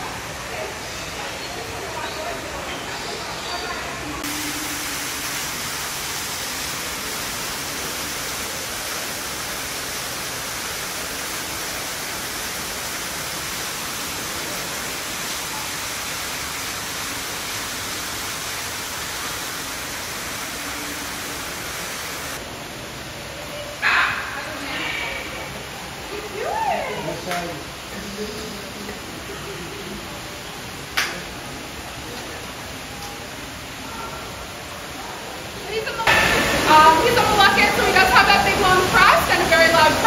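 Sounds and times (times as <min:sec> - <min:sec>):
steady rushing hiss: 0:00.0 - 0:40.0.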